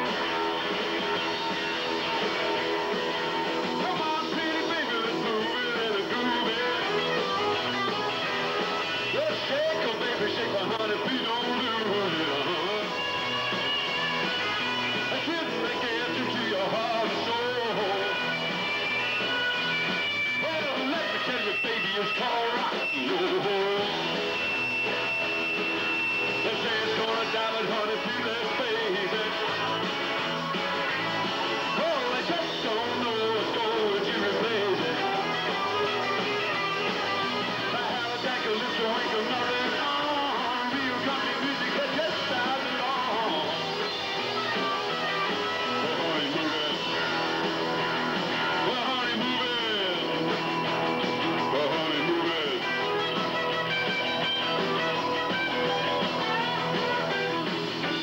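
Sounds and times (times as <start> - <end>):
rock and roll band playing: 0.0 - 58.0.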